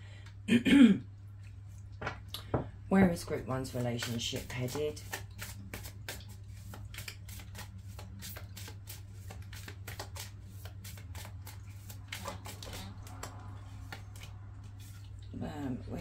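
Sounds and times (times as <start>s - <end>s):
cards being shuffled: 3.7s - 14.9s.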